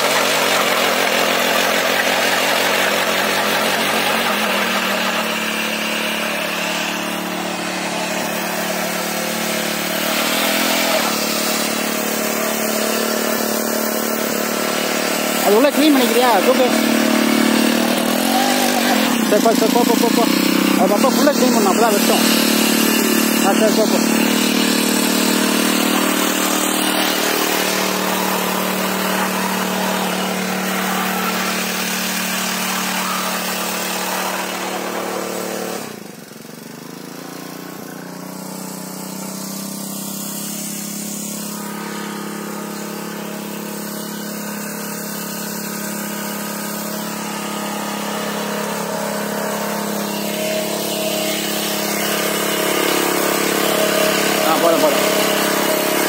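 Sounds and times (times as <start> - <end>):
small petrol engine running: 0.0 - 56.0.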